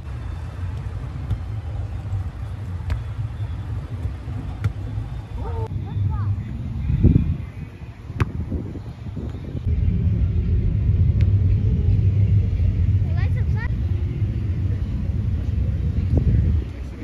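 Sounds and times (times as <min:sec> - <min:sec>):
ball kicked: 0:02.8 - 0:03.1, 0:04.0 - 0:05.0, 0:08.2 - 0:08.6
loud low rumble: 0:09.6 - 0:16.7.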